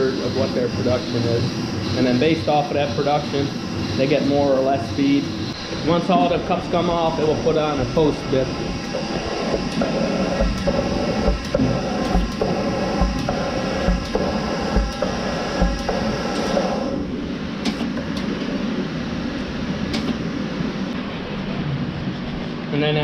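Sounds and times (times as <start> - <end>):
machinery humming: 0.0 - 23.0.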